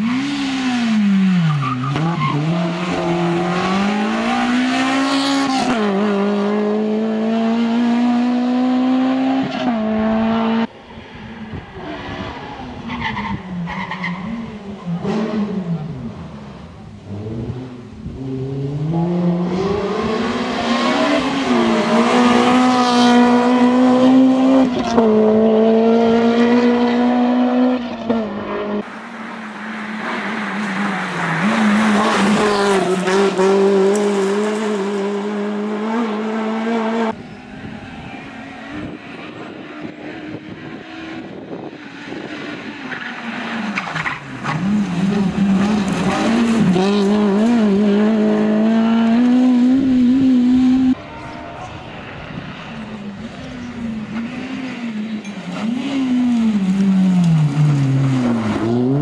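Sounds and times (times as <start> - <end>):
rally car engine revving: 0.0 - 10.7, 11.6 - 37.3, 38.0 - 59.0
tyres on loose gravel: 28.8 - 35.4.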